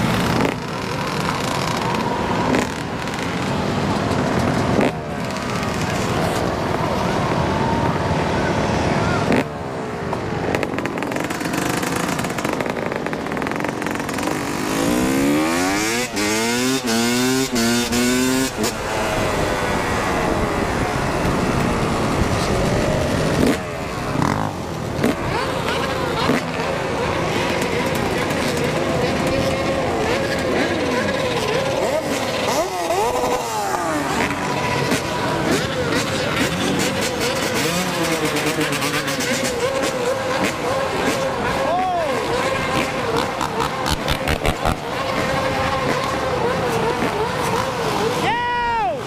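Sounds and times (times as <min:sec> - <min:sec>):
dirt bike engines revving: 0:00.0 - 0:49.0.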